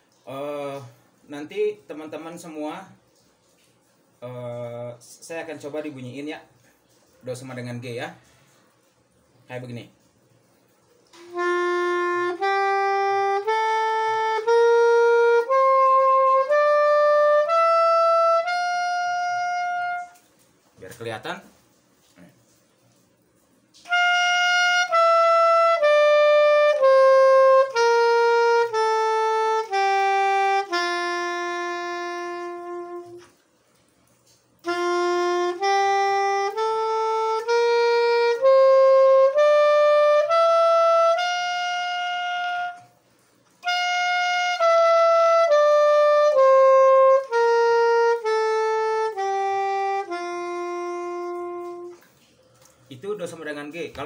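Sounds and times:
soprano saxophone playing scale: 11.1s - 21.0s, 23.8s - 33.5s, 34.2s - 53.0s.

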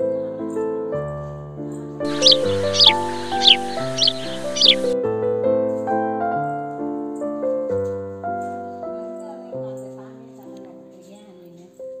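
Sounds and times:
piano-like background music: 0.0s - 12.0s
background hiss: 2.1s - 5.0s
falling bird calls: 2.1s - 5.0s.

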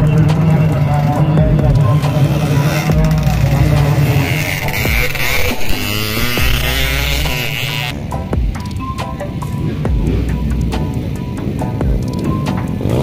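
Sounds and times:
dirt bike engines revving: 0.0s - 13.0s
voices: 0.0s - 13.0s.

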